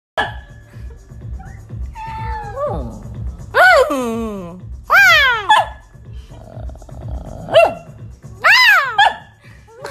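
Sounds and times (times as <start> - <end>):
puppy low grumble: 6.4 - 7.6.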